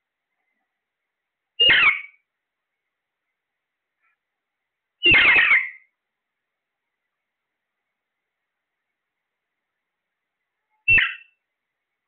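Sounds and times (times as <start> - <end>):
parakeet squawk: 1.6 - 2.2, 5.0 - 5.9, 10.9 - 11.4.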